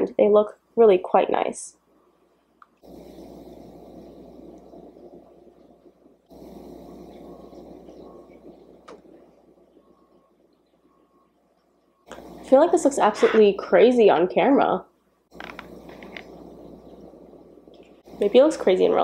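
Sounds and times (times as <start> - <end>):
faint steady background noise: 0.0 - 19.0.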